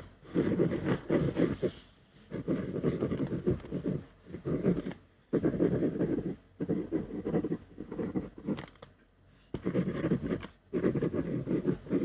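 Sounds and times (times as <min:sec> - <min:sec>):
ballpoint pen writing on paper: 0:00.0 - 0:08.8, 0:09.4 - 0:12.0.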